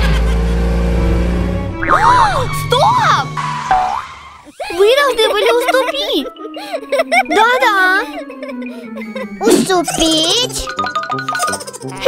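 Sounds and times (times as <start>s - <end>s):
cartoon boing sound effect: 1.8s - 2.7s
bright children's music: 4.8s - 12.0s.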